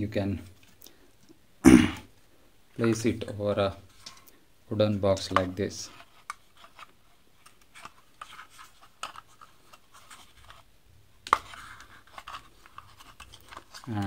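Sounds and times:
sharp knock: 1.7 - 2.0.

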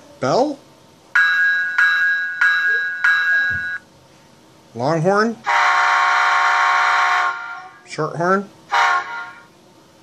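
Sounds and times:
locomotive bell ringing: 1.2 - 3.8.

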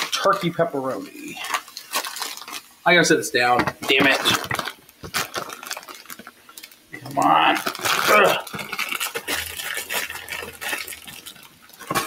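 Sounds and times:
plastic package handling: 0.0 - 12.0.

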